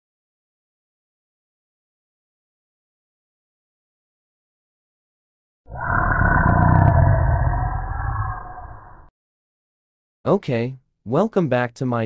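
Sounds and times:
deep dragon roar: 5.7 - 9.1.

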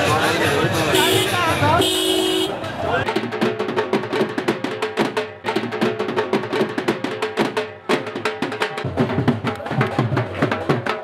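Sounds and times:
crowd voices: 0.0 - 11.0
police car horn honking: 1.0 - 2.6.

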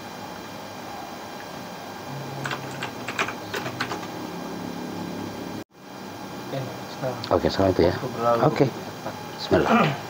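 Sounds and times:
computer keyboard typing: 2.4 - 4.2.

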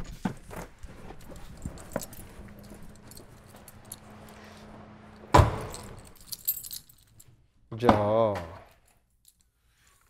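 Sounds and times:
keys jangling: 1.0 - 4.4, 5.5 - 7.4
car door shutting: 3.3 - 6.0.

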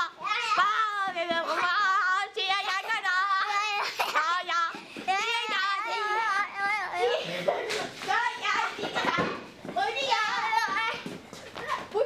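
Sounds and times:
young children shouting: 5.2 - 7.4.

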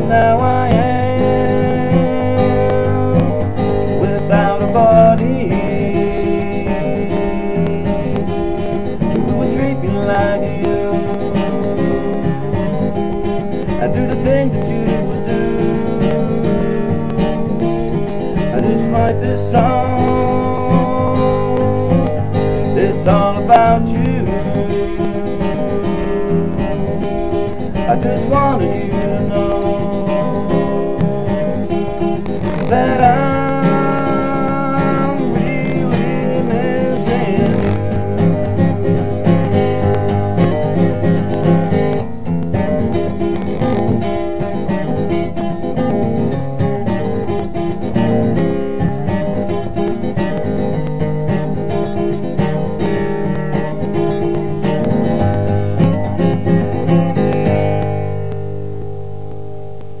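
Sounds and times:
acoustic guitar fingerpicking: 0.0 - 60.0.

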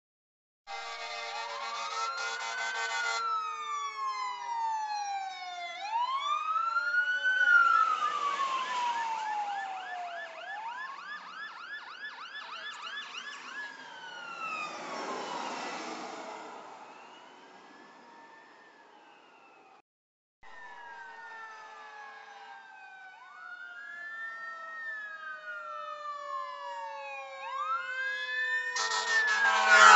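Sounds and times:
horn blast: 0.7 - 3.2, 28.8 - 29.9
fire engine sirens wailing: 0.7 - 19.8, 20.4 - 29.9.

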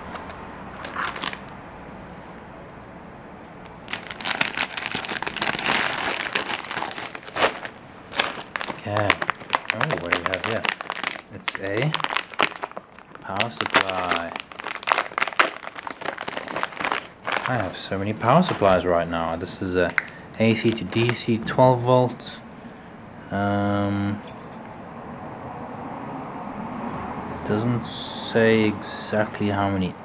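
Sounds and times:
plastic bags crinkling: 0.8 - 1.5, 3.8 - 21.4.

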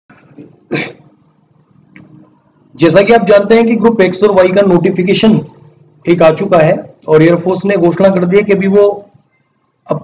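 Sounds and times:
faint room noise: 0.1 - 10.0
person coughing: 0.4 - 1.1.

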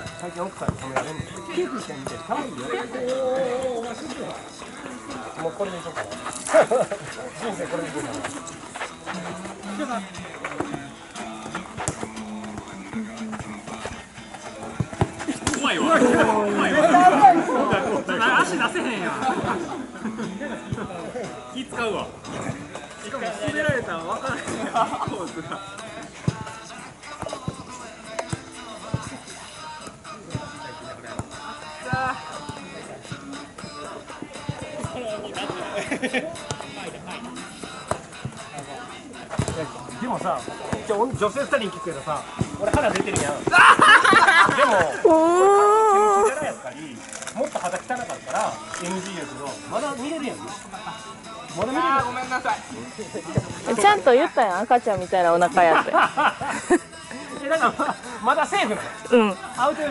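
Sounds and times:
players' voices: 0.0 - 59.9
ball kicks: 0.6 - 1.3, 14.2 - 16.4, 39.3 - 39.8, 42.3 - 45.0.

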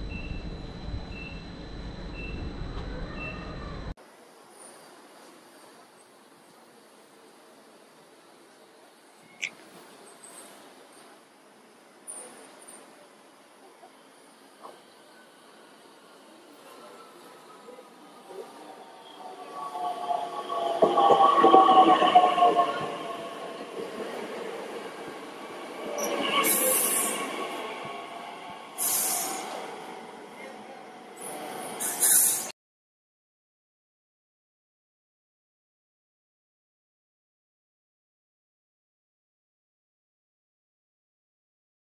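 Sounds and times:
electric train motor whine: 0.0 - 3.9
short air hisses: 28.8 - 29.6, 31.8 - 32.5.

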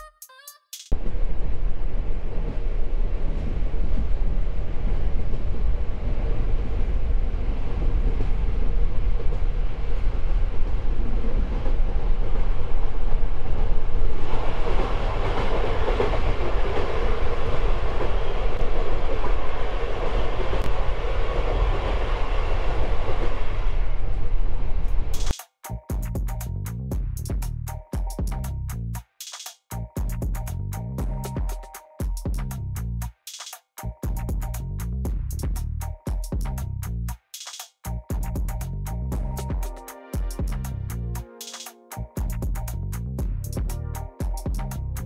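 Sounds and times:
train wheels rumbling on rails: 1.0 - 25.3.

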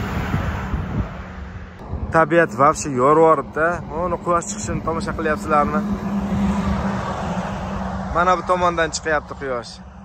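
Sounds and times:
wind gusts on microphone: 0.0 - 9.8.

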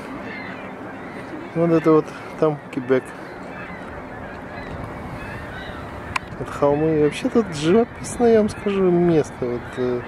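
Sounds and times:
distant bird calls: 0.0 - 10.0
outdoor background noise: 0.0 - 10.0.

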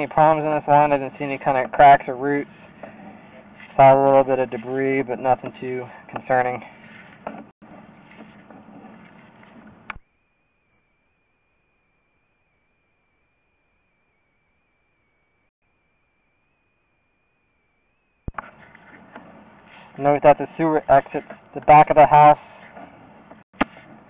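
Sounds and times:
thin high whine: 0.0 - 23.0.

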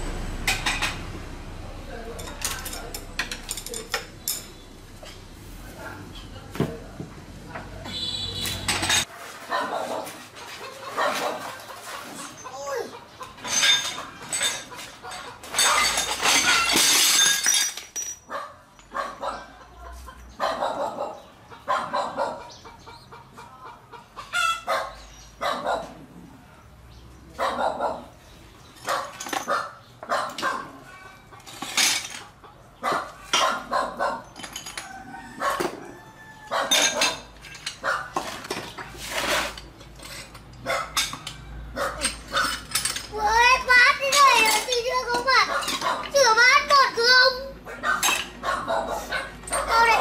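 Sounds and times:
dishes clattering in water: 7.9 - 12.6, 13.3 - 18.1.

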